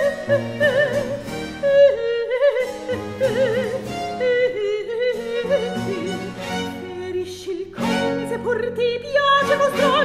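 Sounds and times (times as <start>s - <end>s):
soprano singing with vibrato: 0.0s - 10.0s.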